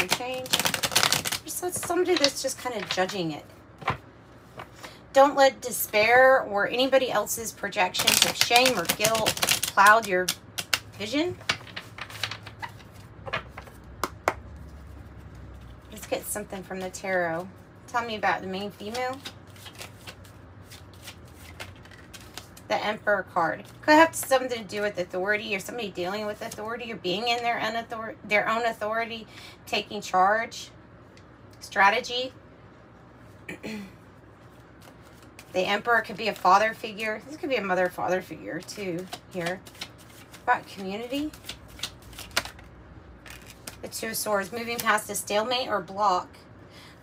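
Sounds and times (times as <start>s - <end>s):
cards being shuffled: 0.0s - 3.2s, 7.8s - 17.0s, 18.7s - 22.7s, 34.5s - 37.0s, 38.6s - 44.0s.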